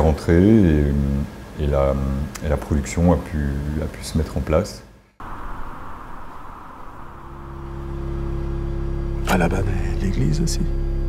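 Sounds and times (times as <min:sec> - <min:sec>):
soft hiss: 0:00.0 - 0:10.3
steady hum: 0:00.0 - 0:11.0
deep rumbling drone: 0:05.2 - 0:11.0.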